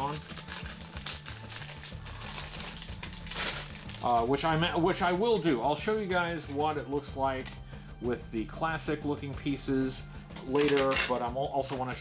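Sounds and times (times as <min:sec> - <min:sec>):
plastic bag crinkling: 0:00.0 - 0:04.7
faint background music: 0:00.0 - 0:12.0.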